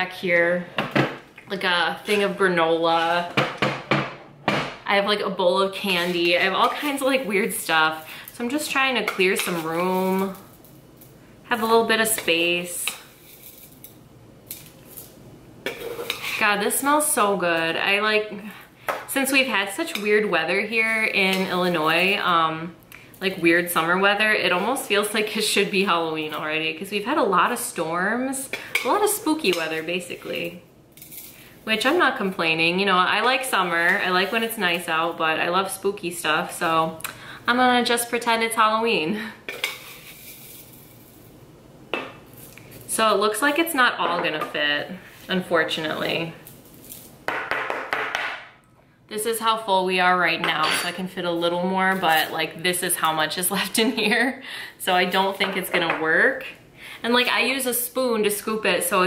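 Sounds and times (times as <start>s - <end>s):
tea leaves scraping and rustling: 9.2s - 10.7s, 12.4s - 15.2s, 20.8s - 22.4s, 33.2s - 35.1s, 39.6s - 41.3s, 45.1s - 47.2s
dry rustle of tea leaves: 9.5s - 10.6s, 13.1s - 13.8s, 39.8s - 41.3s, 46.4s - 47.2s.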